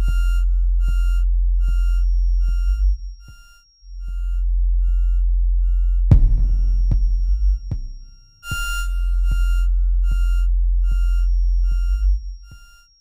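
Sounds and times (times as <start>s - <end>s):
deep sine-wave bass note: 0.0s - 12.8s
square-wave synth blips: 0.0s - 12.9s.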